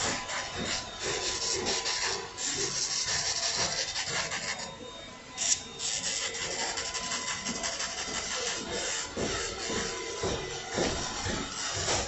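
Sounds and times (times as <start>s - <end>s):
electric nail drill grinding: 0.0s - 12.0s.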